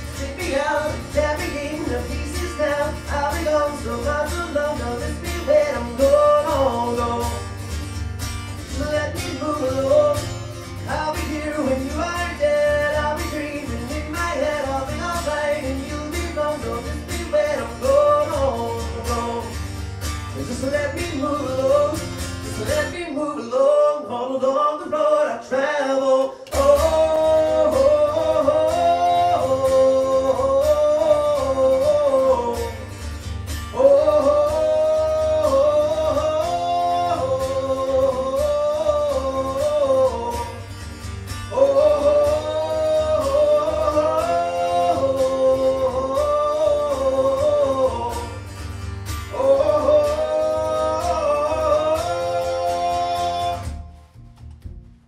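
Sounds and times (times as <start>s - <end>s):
man singing wordless melody: 0.0s - 7.7s, 8.6s - 19.6s, 20.3s - 33.0s, 33.6s - 40.7s, 41.4s - 48.6s, 49.2s - 54.0s
acoustic guitar: 0.0s - 55.0s
low steady bass: 26.6s - 55.0s.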